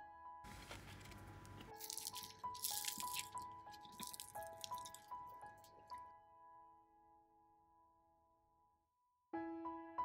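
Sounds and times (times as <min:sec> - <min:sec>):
soft sparse piano music: 0:00.0 - 0:08.7, 0:09.3 - 0:10.0
pastry crust crackling and tearing: 0:00.5 - 0:05.9.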